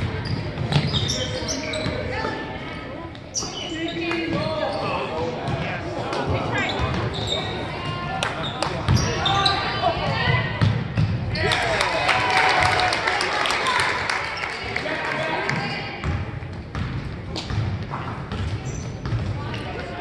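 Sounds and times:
basketball bouncing on hardwood floor: 16.0s - 19.3s.

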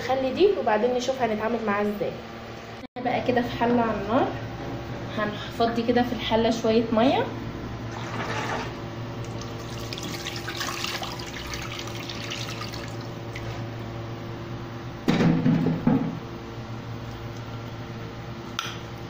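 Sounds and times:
water pouring into cooking pot: 9.3s - 13.2s.

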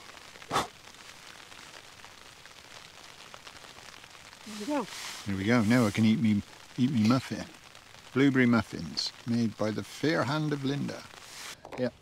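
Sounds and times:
light rain pattering on tent fabric: 0.0s - 12.0s.

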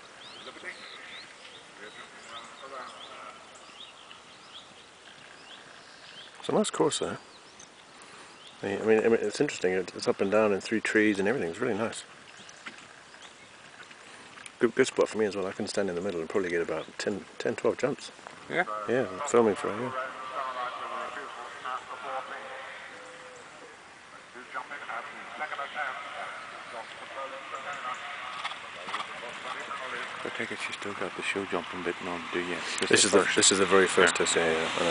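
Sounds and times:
faint steady hiss: 0.0s - 34.9s
soft irregular ticks: 3.6s - 4.3s, 7.4s - 10.0s, 12.0s - 18.5s
faint clicks: 12.2s - 14.6s
indistinct voices talking: 18.5s - 34.9s.

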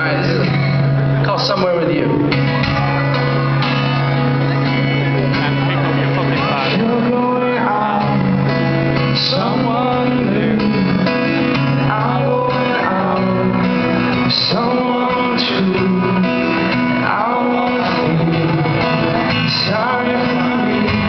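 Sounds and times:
acoustic guitar strumming: 0.0s - 21.0s
man singing: 5.7s - 21.0s.

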